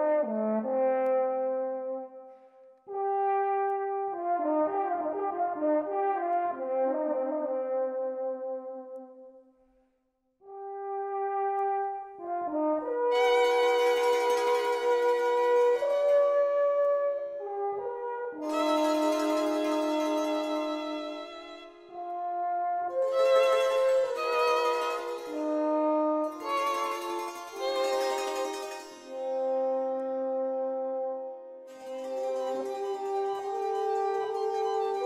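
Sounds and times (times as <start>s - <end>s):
violin and other instruments: 13.0s - 17.7s, 18.4s - 30.4s, 31.7s - 35.0s
alphorn playing held notes: 18.4s - 22.3s, 22.9s - 30.4s.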